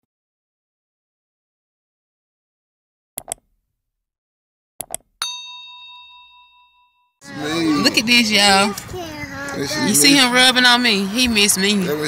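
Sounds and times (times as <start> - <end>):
notification bell ding: 5.2 - 7.1.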